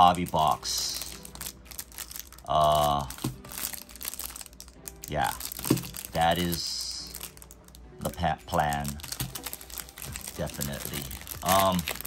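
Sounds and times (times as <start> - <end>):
plastic wrap crinkling: 0.0 - 12.0.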